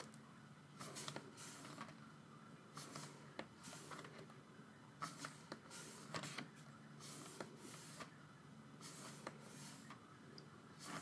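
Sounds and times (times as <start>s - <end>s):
paper pages swishing: 0.8s - 1.9s, 2.8s - 4.1s, 5.0s - 8.1s.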